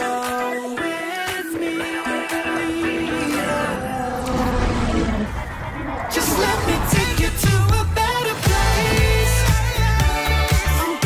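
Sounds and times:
film soundtrack music: 0:00.0 - 0:11.0
deep rumble: 0:02.9 - 0:09.3.

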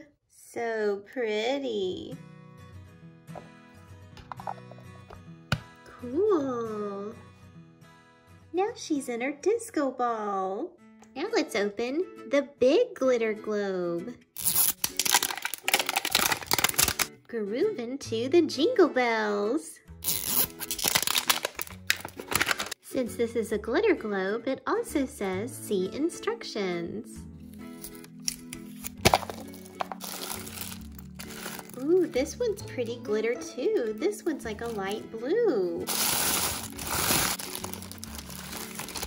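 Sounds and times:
background music: 0:00.4 - 0:39.0
plastic and tissue crinkling: 0:14.4 - 0:17.1, 0:20.1 - 0:22.8, 0:27.8 - 0:32.2, 0:35.9 - 0:39.0
plastic shell cracking open: 0:14.4 - 0:17.1, 0:20.1 - 0:22.8, 0:27.8 - 0:31.8, 0:35.9 - 0:39.0
plastic wrapping tearing: 0:14.4 - 0:17.1, 0:20.0 - 0:22.8, 0:27.7 - 0:32.0, 0:35.9 - 0:39.0.

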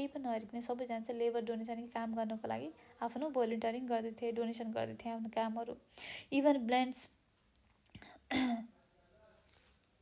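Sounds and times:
person clearing throat: 0:08.3 - 0:08.8.

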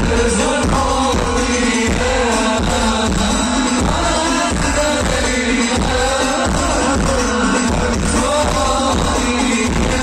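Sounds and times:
band with heavy bass drum: 0:00.0 - 0:10.0
person singing: 0:00.0 - 0:10.0.

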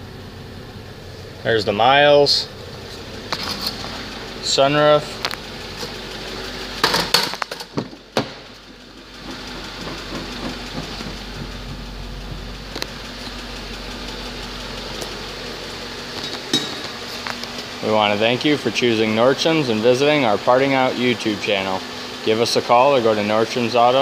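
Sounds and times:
car engine idling: 0:00.0 - 0:24.0
knocks and rustles from handling: 0:06.8 - 0:12.5.

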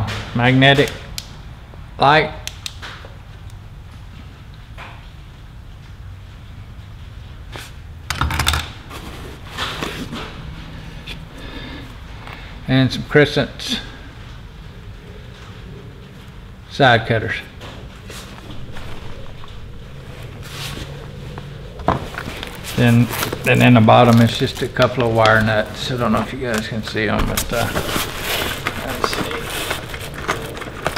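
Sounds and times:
steady low hum: 0:00.0 - 0:30.9
fabric bag rustling: 0:17.9 - 0:30.9
tools clicking and rattling: 0:22.2 - 0:30.9.

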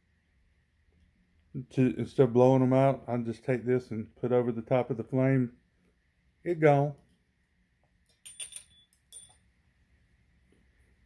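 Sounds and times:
metal tools clinking: 0:08.1 - 0:09.4.

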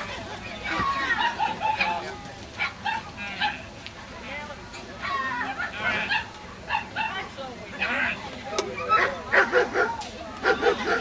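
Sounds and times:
people talking: 0:00.0 - 0:11.0
dog barking and yipping: 0:08.9 - 0:11.0.

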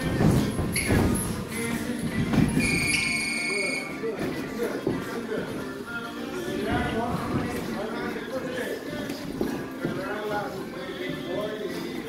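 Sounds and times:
background music: 0:00.0 - 0:12.0
footwork on ring canvas: 0:00.0 - 0:12.0.

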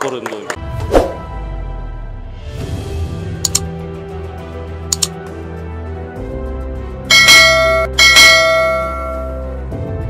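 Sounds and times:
background music: 0:00.1 - 0:10.0
notification bell chime: 0:07.1 - 0:09.4.

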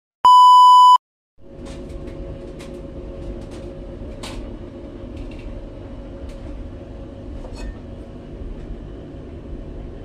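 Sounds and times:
test-tone beep: 0:00.2 - 0:01.0
low background hum: 0:01.4 - 0:10.0.

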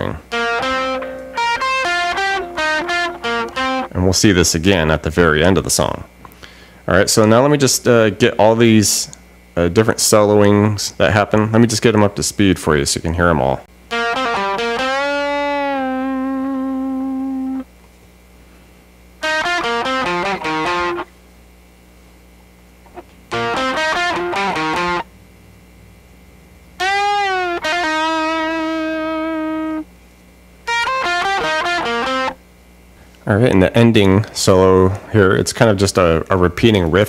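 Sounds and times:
electric guitar licks: 0:00.0 - 0:04.0, 0:13.9 - 0:17.7, 0:19.2 - 0:21.1, 0:22.8 - 0:25.2, 0:26.8 - 0:29.9, 0:30.6 - 0:32.4
faint low hum: 0:00.0 - 0:37.0.

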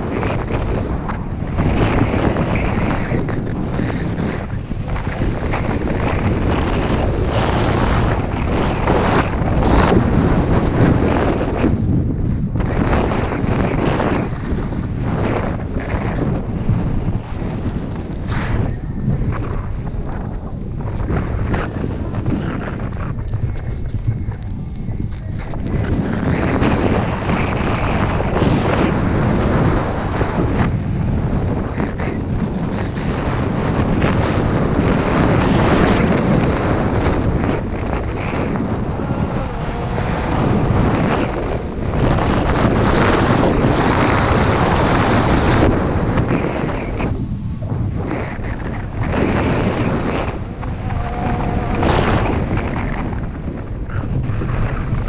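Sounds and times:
wind rushing over microphone: 0:00.0 - 0:55.0
skis sliding over snow: 0:12.7 - 0:31.4, 0:47.9 - 0:55.0.

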